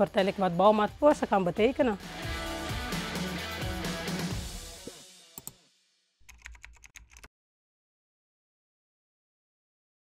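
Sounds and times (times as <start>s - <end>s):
background music: 0.0s - 6.6s
keyboard typing: 6.2s - 7.3s
sharp clicks: 6.2s - 7.3s.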